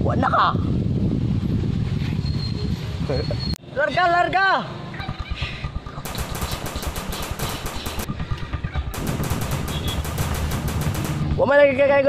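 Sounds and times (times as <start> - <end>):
automatic gunfire bursts: 6.0 - 8.2, 8.9 - 11.5.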